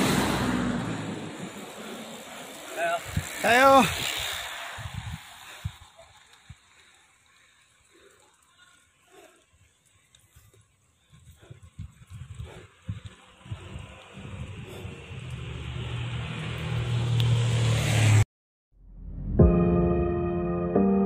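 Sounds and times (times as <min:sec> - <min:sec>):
wind buffeting microphone: 0:03.0 - 0:06.7, 0:09.5 - 0:16.5.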